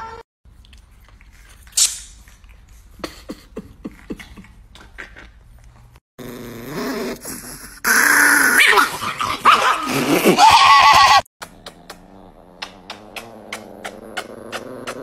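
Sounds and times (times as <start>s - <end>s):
dog growling: 6.2s - 10.5s, 11.4s - 15.0s.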